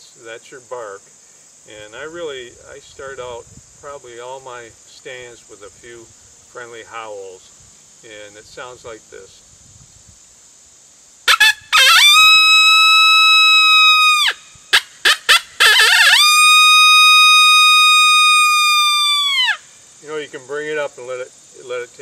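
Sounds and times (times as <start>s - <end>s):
coyote howler call blown: 11.3s - 19.7s.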